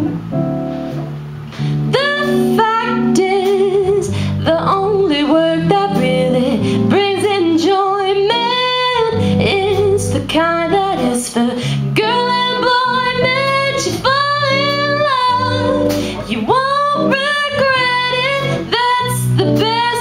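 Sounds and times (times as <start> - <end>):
drum kit with cymbal hits: 0.0 - 20.0
guitar: 0.0 - 20.0
low accompaniment line: 0.0 - 20.0
women singing: 1.9 - 20.0.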